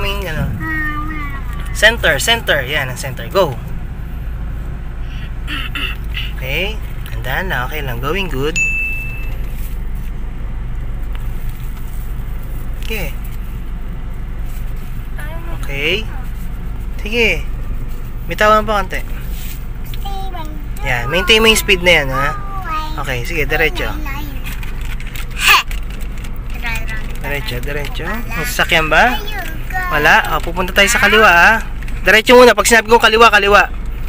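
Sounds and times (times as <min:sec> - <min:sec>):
car engine and tyres drone: 0:00.0 - 0:34.0
person talking: 0:20.2 - 0:24.6.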